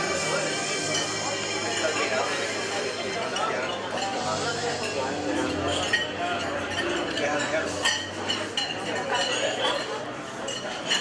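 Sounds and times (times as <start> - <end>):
indistinct chatter: 0.0 - 11.0
cutlery clinking on plates: 0.8 - 11.0.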